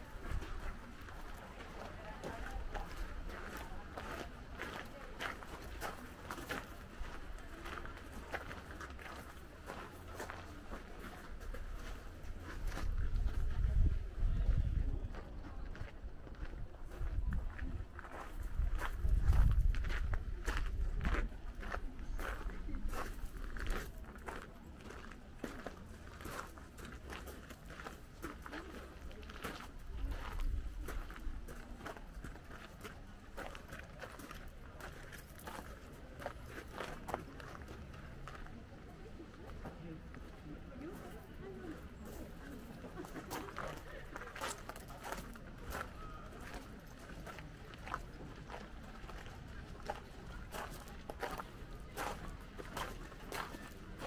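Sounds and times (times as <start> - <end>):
faint voices: 0.0 - 54.0
low rumbling wind on microphone: 18.5 - 21.1.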